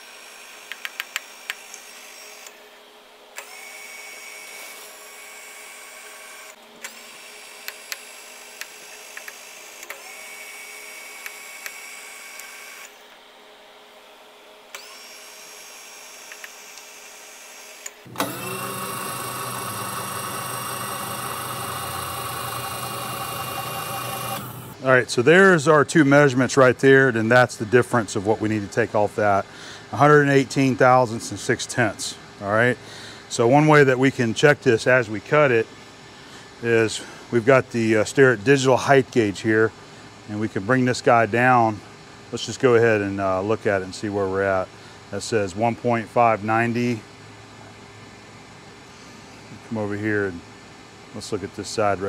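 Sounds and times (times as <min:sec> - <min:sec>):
small electric motor humming: 0:14.7 - 0:24.8.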